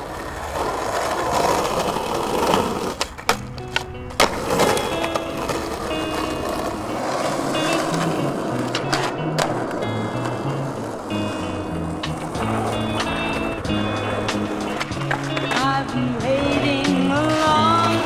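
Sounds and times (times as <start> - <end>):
skateboard clacks: 0.0 - 18.0
skateboard wheels rolling on concrete: 0.0 - 18.0.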